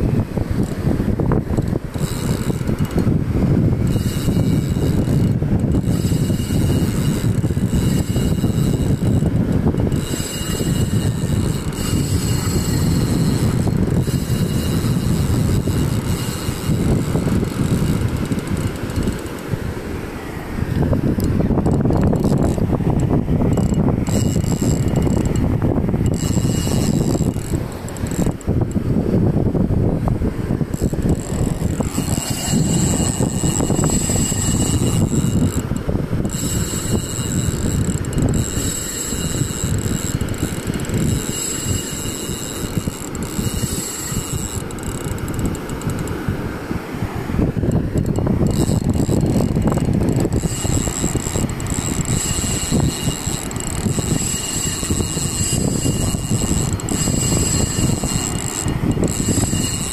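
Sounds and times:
fishing reel whining: 0.0 - 59.9
wind rumble on microphone: 0.0 - 59.9.

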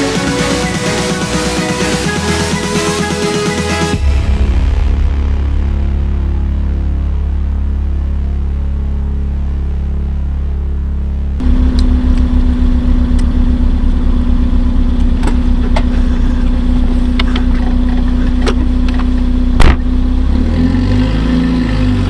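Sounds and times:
car engine idling: 0.0 - 20.4
loud thump: 19.6 - 19.9.

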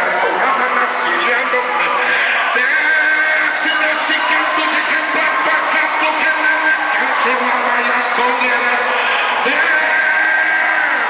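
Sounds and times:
amplified worship music: 0.0 - 11.0.

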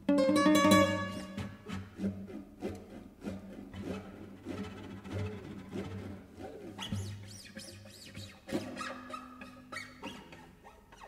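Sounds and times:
guitars playing gliding notes: 0.0 - 1.7.

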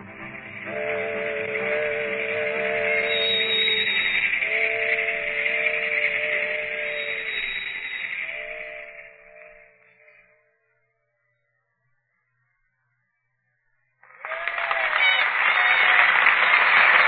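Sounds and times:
train whistle blasts: 0.0 - 10.3.

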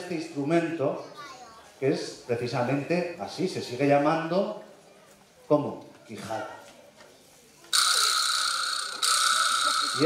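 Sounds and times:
vibraslap rattle: 7.7 - 10.0.

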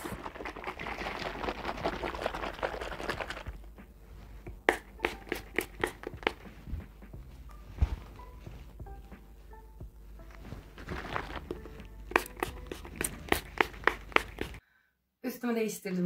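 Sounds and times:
rustling of hair and bottle: 0.0 - 7.0, 10.2 - 14.6
trigger spray bottle spritzing: 4.6 - 6.5, 11.1 - 14.6.

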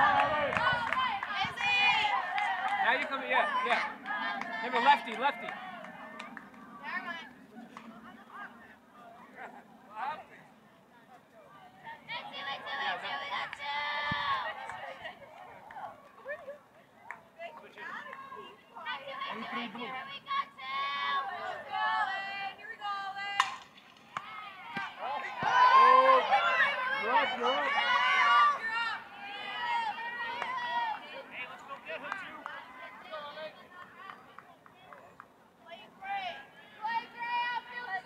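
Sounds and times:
people shouting: 23.4 - 31.3.

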